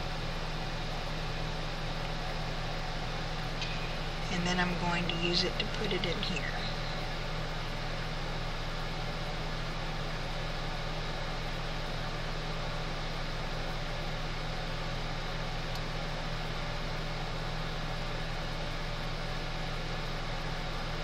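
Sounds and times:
fan motor humming with hiss: 0.0s - 21.0s.

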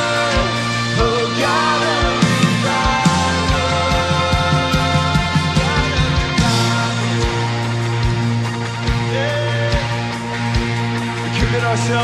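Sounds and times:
bass note: 0.0s - 11.8s
low drum beat: 0.0s - 11.8s
guitars: 0.0s - 12.0s
live band playing: 0.0s - 12.0s.

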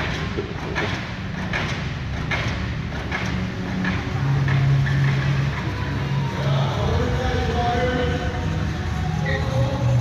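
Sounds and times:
car engines rumbling: 0.0s - 10.0s.

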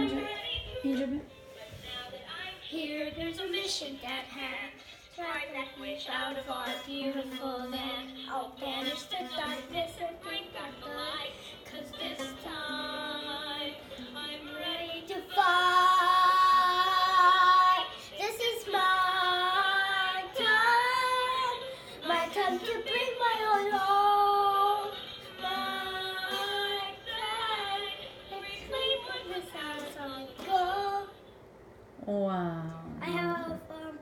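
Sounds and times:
girl singing long held notes: 0.0s - 31.2s.

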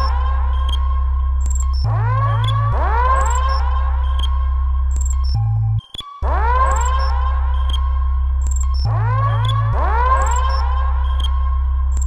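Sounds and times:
trap beat instrumental: 1.4s - 3.6s.

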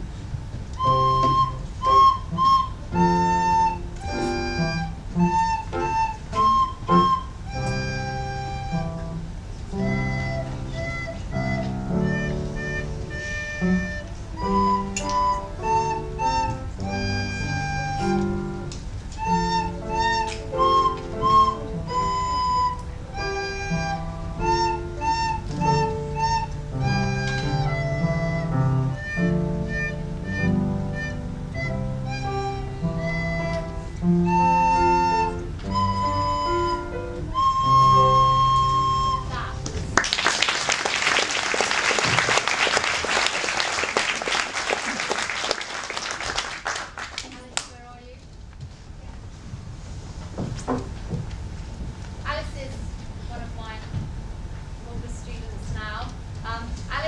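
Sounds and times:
instrumental accompaniment: 0.7s - 40.3s
child playing recorder: 0.8s - 39.9s.

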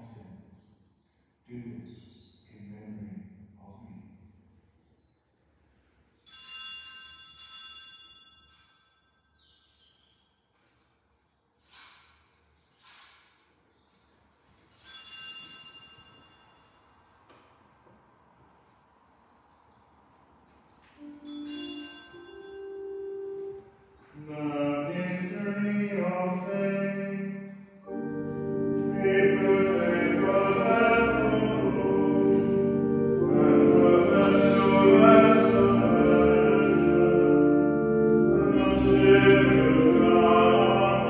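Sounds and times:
altar bell ringing: 6.2s - 9.8s, 14.6s - 17.0s, 20.9s - 23.8s
held chant note: 21.0s - 25.0s
organ: 21.0s - 41.0s
voices singing chant: 28.9s - 37.5s, 38.2s - 41.0s.

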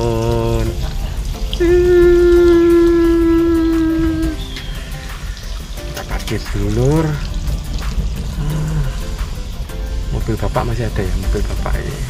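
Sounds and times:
steady pitched tone: 0.0s - 12.0s.

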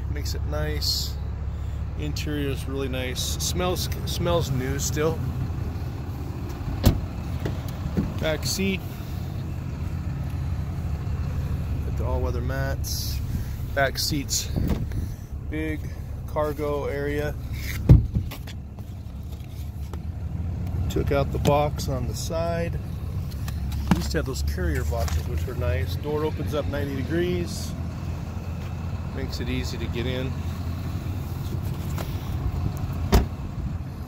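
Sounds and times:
low steady rumble: 0.0s - 34.0s
pickup engine idling: 0.0s - 34.0s
car door shutting thump: 6.8s - 8.1s, 33.1s - 33.3s.

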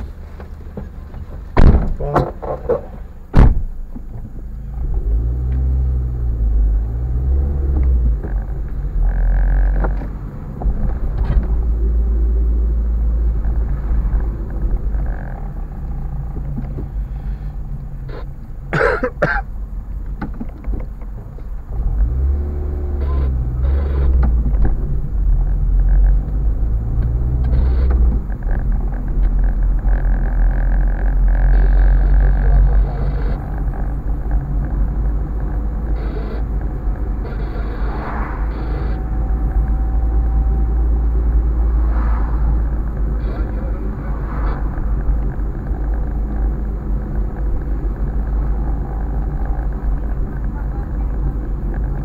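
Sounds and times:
car engine and road rumble: 0.0s - 52.0s.

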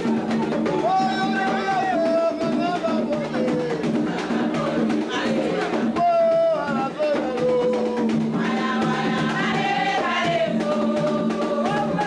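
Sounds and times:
drum strokes: 0.0s - 12.0s
group singing together: 0.0s - 12.0s.

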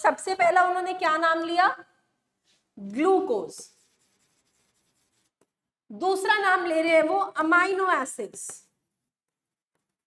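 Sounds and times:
stylus scratching on screen: 2.5s - 5.6s.

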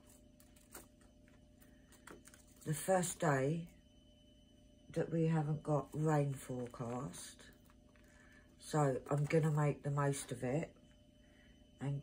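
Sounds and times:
washing machine humming: 0.0s - 12.0s.

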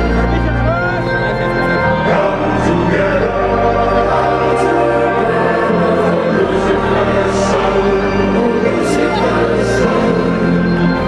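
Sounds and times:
choir-like vocals: 0.0s - 11.0s.

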